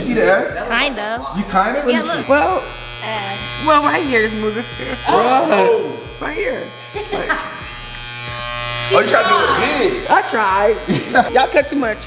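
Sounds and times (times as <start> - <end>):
electric hair clippers buzzing: 0.4 - 12.0.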